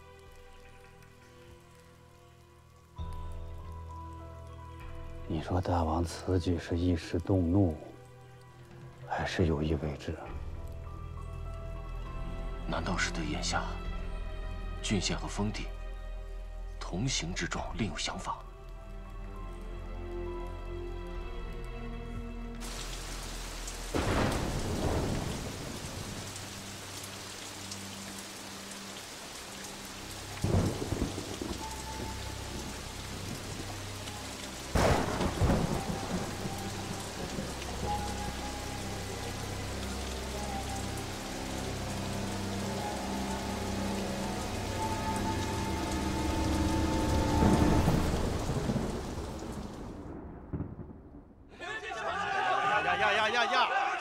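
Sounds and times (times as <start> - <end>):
heavy rain: 0.0 - 53.4
thunder claps: 23.9 - 26.1, 34.8 - 38.0, 47.4 - 51.5
rolling thunder rumble: 23.9 - 26.3, 34.8 - 38.4, 46.4 - 51.5.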